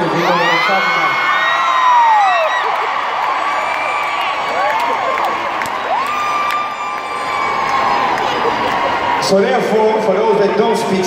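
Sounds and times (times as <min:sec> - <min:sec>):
concert crowd cheering: 0:00.0 - 0:11.0
long held scream: 0:05.8 - 0:08.2.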